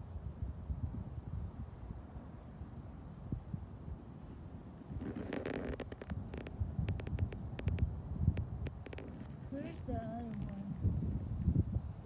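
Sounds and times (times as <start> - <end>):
wind rumbling on microphone: 0.0 - 12.0
brief rustle: 5.0 - 7.8.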